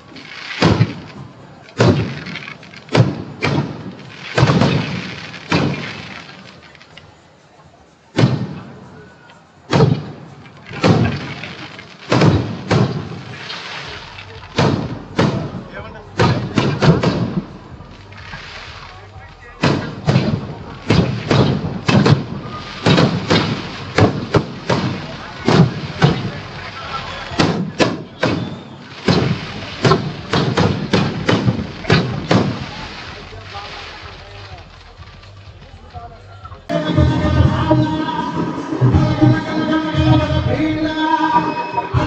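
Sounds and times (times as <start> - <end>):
fireworks bursting: 0.0 - 7.4, 8.1 - 36.0.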